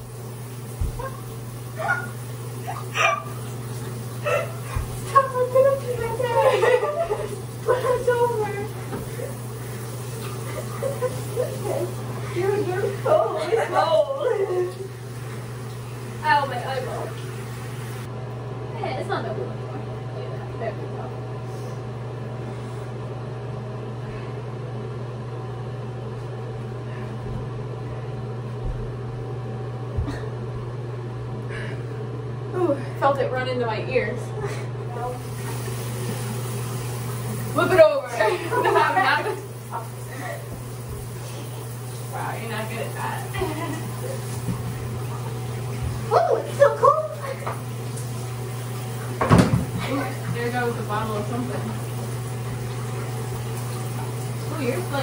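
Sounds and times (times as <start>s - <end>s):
low mechanical hum: 0.0s - 55.0s
woman giggling: 4.2s - 8.4s, 10.5s - 14.9s, 43.3s - 44.2s.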